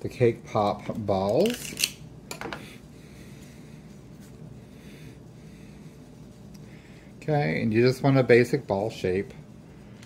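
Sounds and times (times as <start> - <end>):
low steady hum: 0.0 - 10.0
gloved hands rubbing: 3.0 - 10.0.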